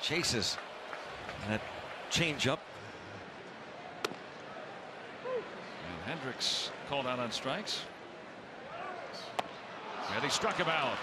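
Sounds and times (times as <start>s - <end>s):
ball popping into catcher's mitt: 4.0s - 4.2s.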